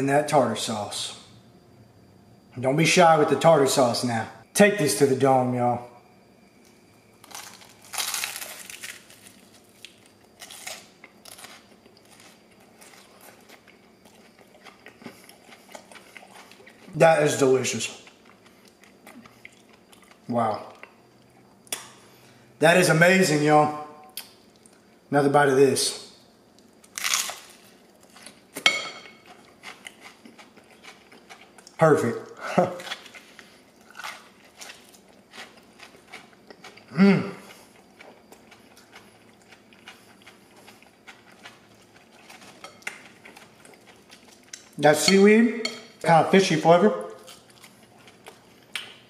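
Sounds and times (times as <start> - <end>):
crunching bites and chewing: 6.6 - 16.9, 26.5 - 31.8, 32.7 - 36.9, 47.2 - 49.0
crunchy bite into fried fish: 7.2 - 13.7, 26.9 - 28.4.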